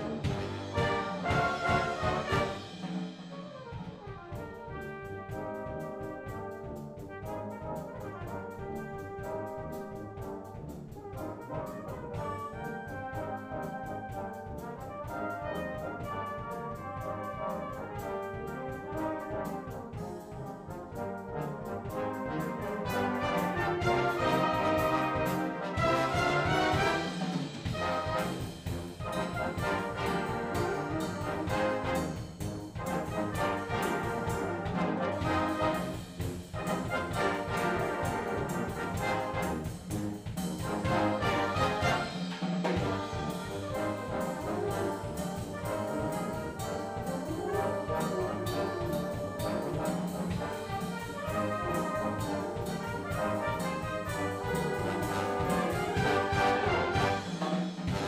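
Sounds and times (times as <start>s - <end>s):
brass band playing: 0.0s - 58.0s
drum kit beat: 0.0s - 58.0s.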